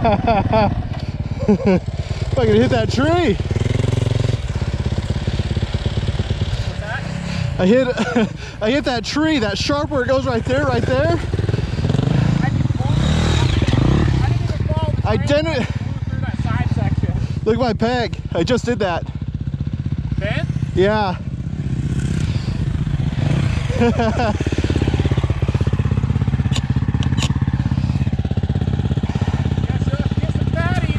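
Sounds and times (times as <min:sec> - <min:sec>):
dirt bike engines idling: 0:00.0 - 0:30.9.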